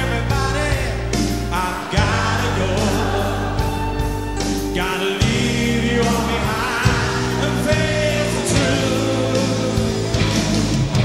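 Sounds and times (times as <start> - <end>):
man singing rock ballad: 0.0 - 11.0
rock band playing: 0.0 - 11.0.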